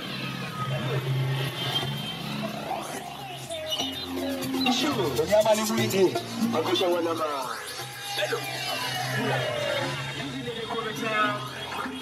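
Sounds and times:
motorcycle engines droning: 0.0s - 5.3s.

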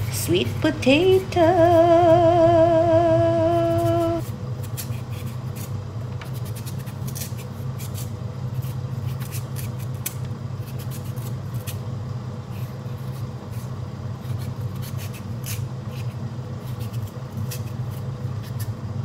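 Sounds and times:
steady low hum: 0.0s - 19.0s
knife scraping potato skin: 3.5s - 18.8s.

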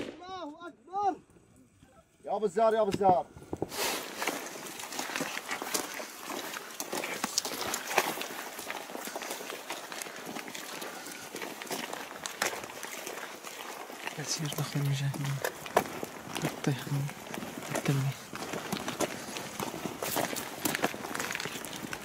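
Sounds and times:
footsteps: 2.8s - 22.0s
clothing and gear rustling: 3.4s - 22.0s.

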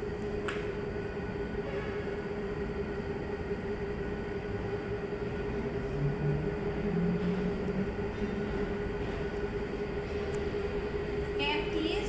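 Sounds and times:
machine hum: 0.0s - 12.0s.

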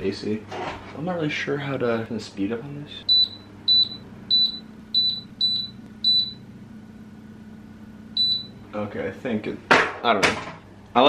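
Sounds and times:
air conditioner low hum: 0.0s - 11.0s
air conditioner beeps: 3.0s - 7.1s, 8.1s - 8.8s.

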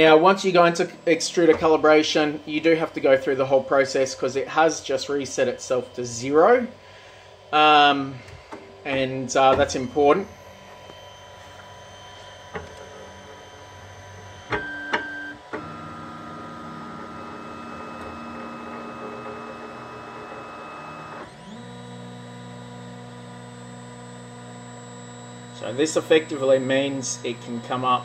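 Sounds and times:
stepper motors whining: 7.5s - 28.0s.

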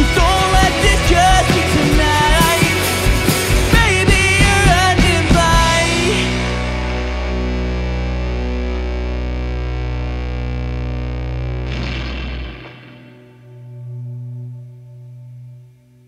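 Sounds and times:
deep bass: 0.0s - 16.0s
distorted electric guitars: 0.0s - 16.0s.

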